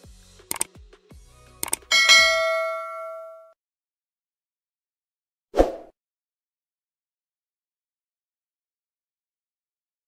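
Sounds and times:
bell ding: 1.9s - 3.6s.

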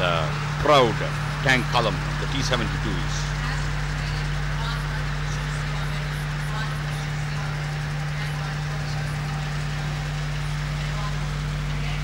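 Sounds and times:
constant low hum: 0.0s - 12.0s
faint voices: 0.0s - 12.0s
tank engines and tracks: 0.0s - 12.0s.

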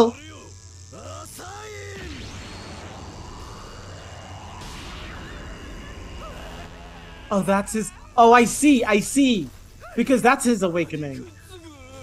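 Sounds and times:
rising sweep sound effect: 2.0s - 8.7s.

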